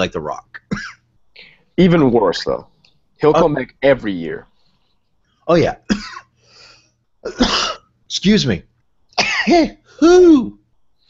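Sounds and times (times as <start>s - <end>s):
man coughing: 0.6s - 1.0s, 5.8s - 6.4s, 7.3s - 7.9s, 9.2s - 9.8s
faint breath: 1.4s - 1.8s, 6.4s - 7.1s.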